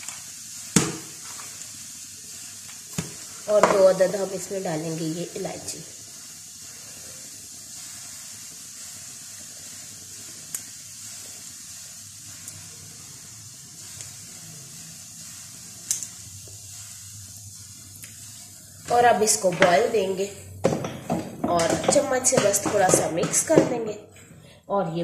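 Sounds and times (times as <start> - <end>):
gas burner hissing: 0.0 - 25.0.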